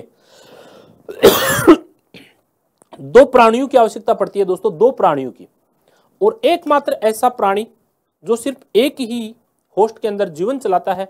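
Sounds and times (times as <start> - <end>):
man coughing: 1.1 - 2.4.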